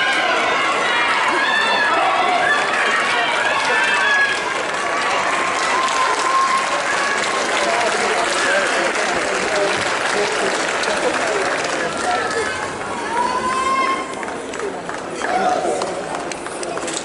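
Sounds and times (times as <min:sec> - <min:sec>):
crowd cheering and calling out: 0:00.0 - 0:17.0.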